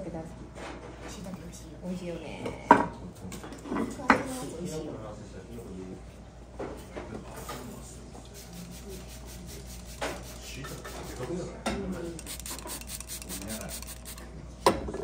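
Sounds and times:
brush rubbing on food: 8.4s - 11.2s, 12.2s - 14.2s.

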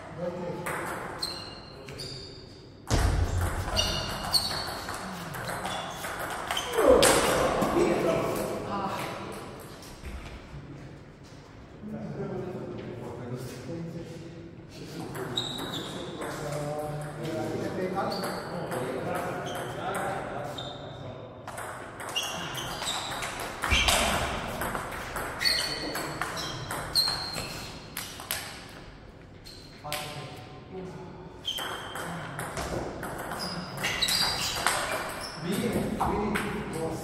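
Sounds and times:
table tennis ball hits: 2.9s - 7.7s, 21.5s - 28.6s.

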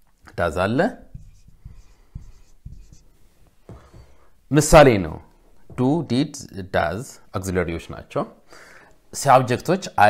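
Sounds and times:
marker pen writing on whiteboard: 0.6s - 4.3s.

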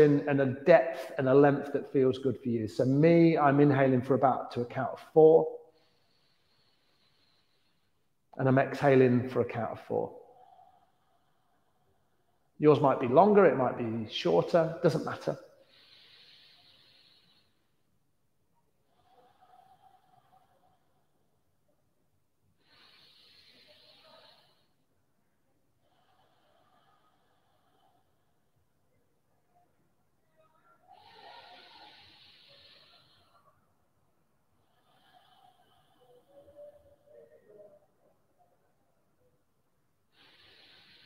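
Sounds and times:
faint breathing through nose: 5.6s - 8.3s, 10.0s - 12.6s, 14.6s - 17.9s, 18.8s - 21.4s, 22.4s - 24.9s, 25.7s - 28.6s, 30.9s - 33.8s, 34.4s - 37.7s, 40.1s - 41.0s.

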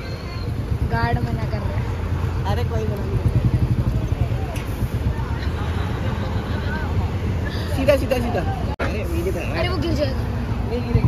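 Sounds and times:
buses and motorbikes passing: 0.0s - 11.0s
road traffic rumble: 0.0s - 11.0s.

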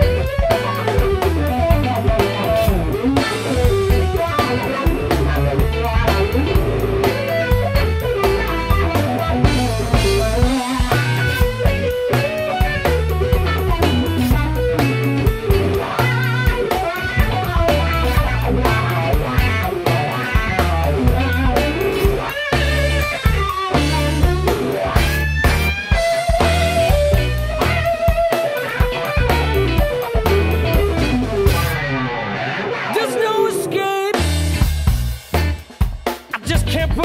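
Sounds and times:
electric guitar solo: 0.0s - 34.7s
bass and drums: 0.0s - 37.0s.

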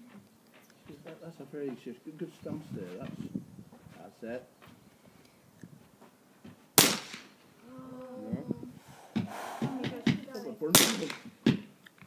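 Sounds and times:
rifle shot with echo: 6.8s - 7.3s, 10.7s - 11.3s.

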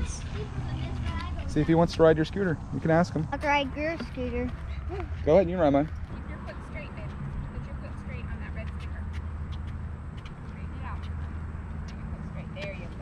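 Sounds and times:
low rumble: 0.0s - 8.6s.

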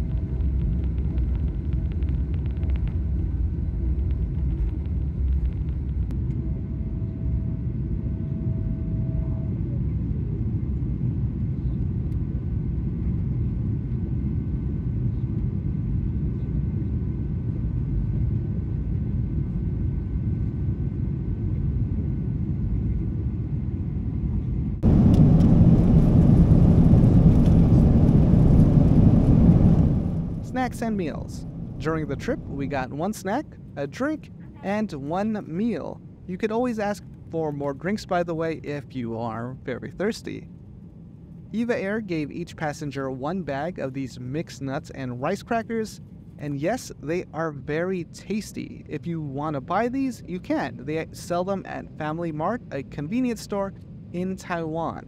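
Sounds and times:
faint engine whine: 0.0s - 55.0s
jet engine rumble in cabin: 0.0s - 55.0s.

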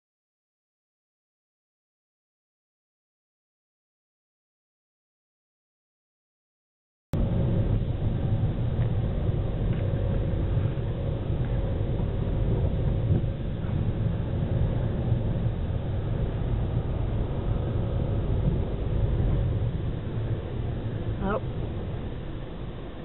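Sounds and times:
car engine and road noise: 7.2s - 23.0s.

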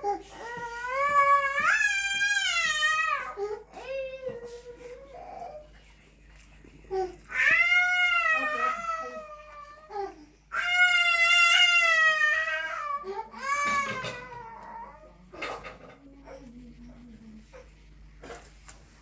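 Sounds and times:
high-pitched wailing cries: 7.3s - 15.2s.

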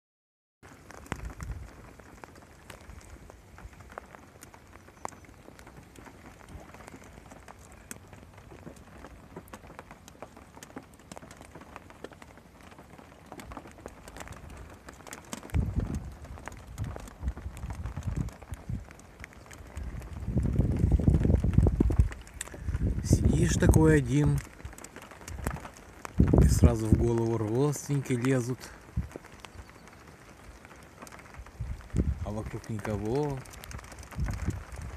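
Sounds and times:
rain falling on water: 0.6s - 34.9s
deep rumbling noise: 19.7s - 23.8s.

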